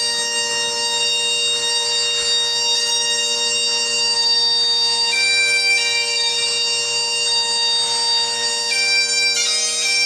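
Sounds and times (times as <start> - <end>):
bagpipes playing: 0.0 - 10.0.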